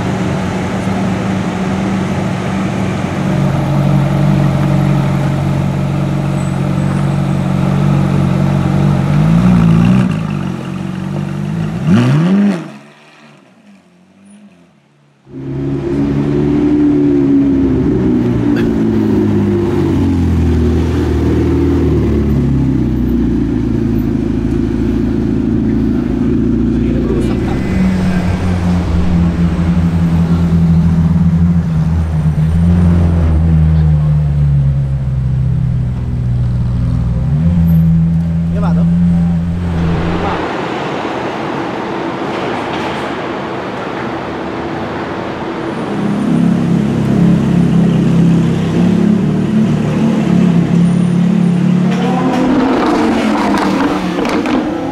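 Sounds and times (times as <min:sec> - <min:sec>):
car engine rumbling: 0:00.0 - 0:43.5, 0:45.4 - 0:54.9
sports car engine idling and revving: 0:00.0 - 0:54.9
deep car engine idling: 0:22.1 - 0:40.4.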